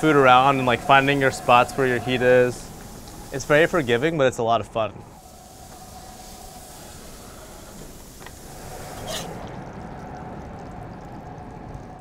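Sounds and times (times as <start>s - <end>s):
hot oil sizzling in a skillet: 5.2s - 9.4s.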